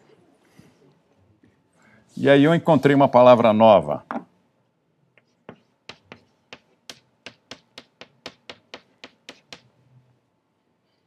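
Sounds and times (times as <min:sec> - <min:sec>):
writing taps on a board: 0:05.2 - 0:09.7.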